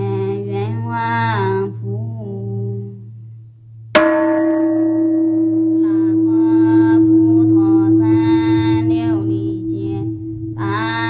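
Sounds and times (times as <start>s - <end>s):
person chanting: 0.0s - 3.0s, 4.8s - 11.0s
steady low drone: 0.0s - 11.0s
bell struck and ringing: 4.0s - 11.0s.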